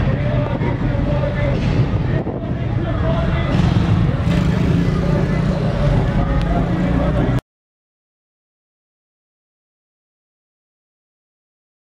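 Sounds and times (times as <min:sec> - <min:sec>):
people talking: 0:00.0 - 0:07.4
vehicle engine rumbling: 0:00.0 - 0:07.4.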